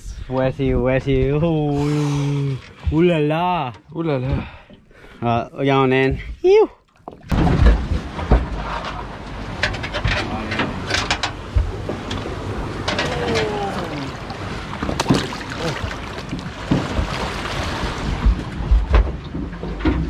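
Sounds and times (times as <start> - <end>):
wind: 0.0 - 20.0
sea noise: 7.0 - 18.9.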